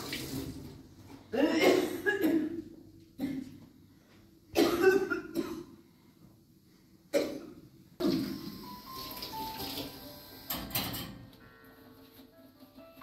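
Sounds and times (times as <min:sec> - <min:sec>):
man coughing: 0:01.4 - 0:03.6, 0:04.6 - 0:05.8
music: 0:08.3 - 0:13.0.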